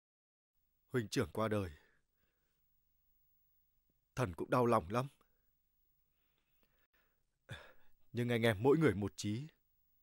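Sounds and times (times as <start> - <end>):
man speaking: 0.9 - 1.9, 4.2 - 5.2, 8.1 - 9.6
man breathing faintly: 1.8 - 2.8, 5.2 - 8.1.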